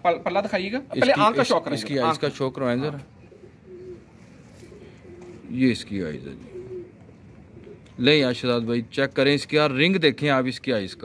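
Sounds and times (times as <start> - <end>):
pigeons cooing: 3.0 - 8.0, 10.7 - 11.0.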